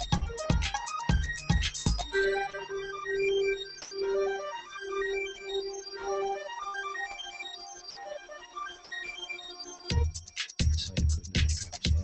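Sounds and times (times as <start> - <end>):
kick drum: 0.0 - 2.1, 9.9 - 12.0.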